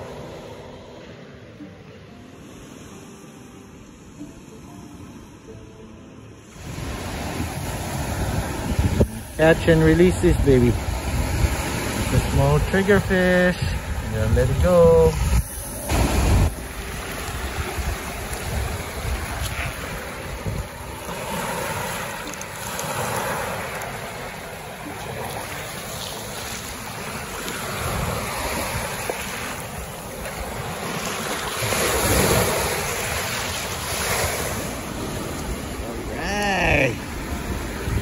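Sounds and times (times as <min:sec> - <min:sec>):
small waves washing on sand: 0:00.0 - 0:05.6, 0:06.4 - 0:38.0
wind buffeting microphone: 0:06.6 - 0:36.2, 0:37.1 - 0:38.0.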